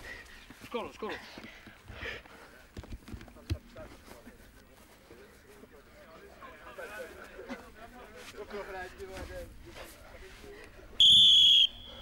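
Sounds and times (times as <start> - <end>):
faint background voices: 0.6 - 11.0.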